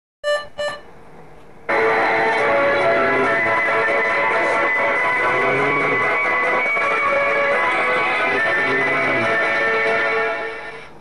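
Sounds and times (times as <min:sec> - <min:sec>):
short electronic beeps: 0:00.2 - 0:00.9
loud music: 0:01.7 - 0:10.9.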